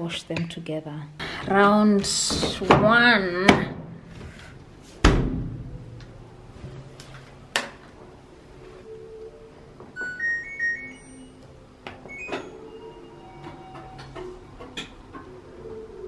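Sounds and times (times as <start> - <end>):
thump: 5.0 - 5.8
tones stepping in pitch: 10.0 - 11.4
electronic beeps: 10.0 - 11.5.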